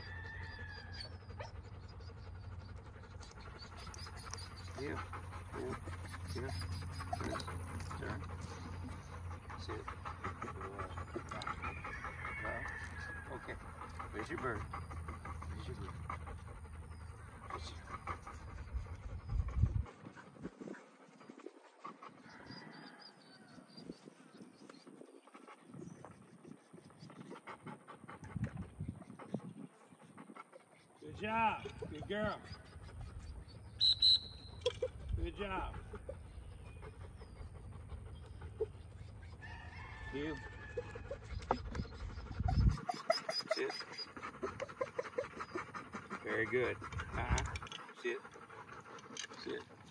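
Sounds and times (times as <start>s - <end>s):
dog panting: 0.0s - 49.9s
faint outdoor sounds: 0.0s - 49.9s
wind rumble on microphone: 18.5s - 20.8s, 28.2s - 29.8s, 41.3s - 42.9s.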